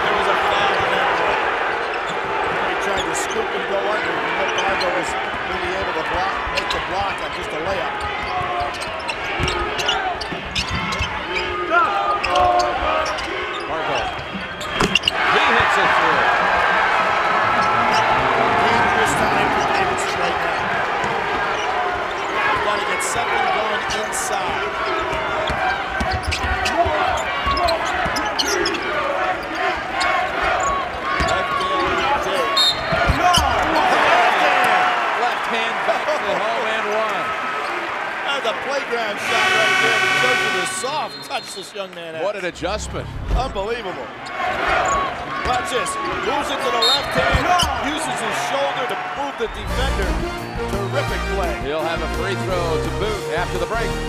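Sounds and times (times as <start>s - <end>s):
crowd cheering: 0.0s - 42.8s, 43.4s - 54.0s
crowd murmur: 11.4s - 35.0s.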